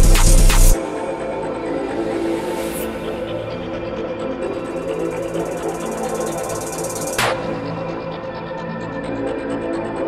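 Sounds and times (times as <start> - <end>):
rapid high ticking: 5.3 - 7.2.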